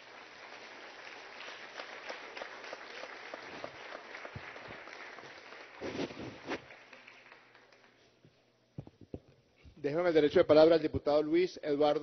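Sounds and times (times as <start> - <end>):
many hands clapping: 0.0 - 8.1.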